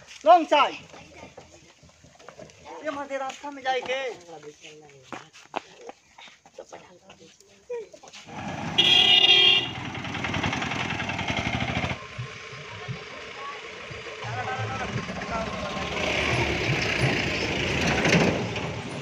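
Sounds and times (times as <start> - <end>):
truck engine and tyres passing: 8.2 - 19.0
small engine pulsing past: 8.3 - 19.0
vehicle horn toot: 8.6 - 10.0.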